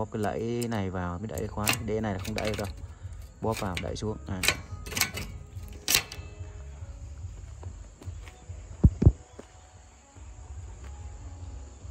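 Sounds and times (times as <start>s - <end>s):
bicycle lock clicking shut: 0.0s - 6.4s.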